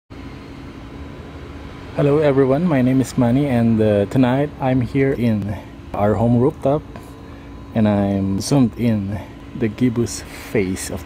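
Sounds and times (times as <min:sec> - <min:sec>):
low background hum: 0:00.1 - 0:11.0.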